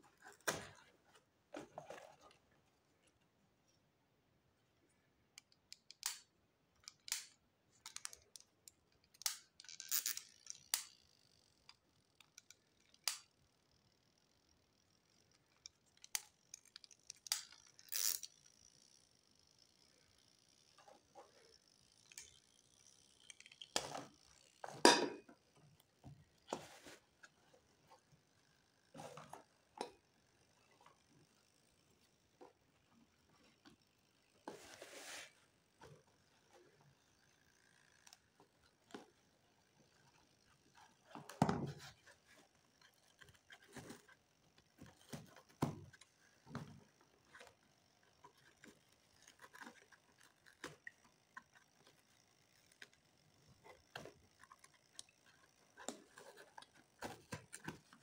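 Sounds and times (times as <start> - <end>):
wires clicking in cardboard box: 5.4 - 13.5, 14.8 - 18.4, 20.8 - 28.1, 38.0 - 58.0
plastic timer clicks: 5.4 - 20.8, 21.5 - 24.6.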